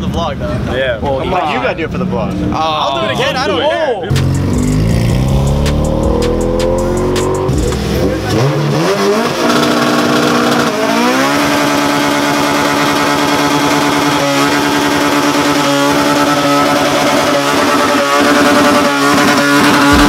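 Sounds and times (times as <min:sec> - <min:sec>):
car engine revving: 0:04.0 - 0:20.0.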